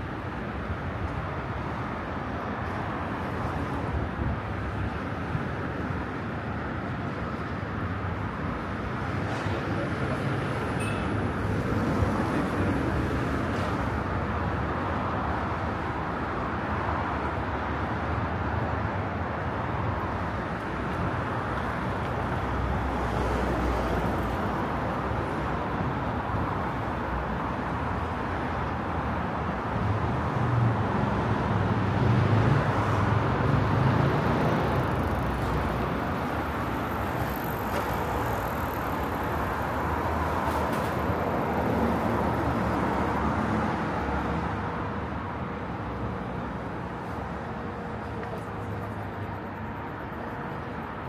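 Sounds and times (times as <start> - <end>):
passing cars: 0.0 - 51.0.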